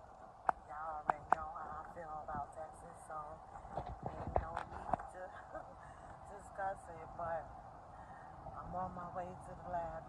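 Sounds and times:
woman's voice: 0.5s - 10.0s
knocks and low thumps: 3.7s - 5.2s.

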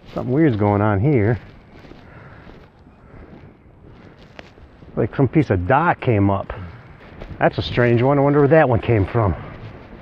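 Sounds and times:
wind on microphone: 1.2s - 10.0s.

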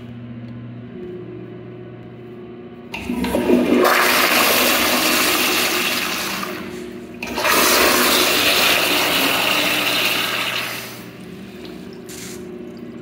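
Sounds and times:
toilet flushing: 2.9s - 13.0s.

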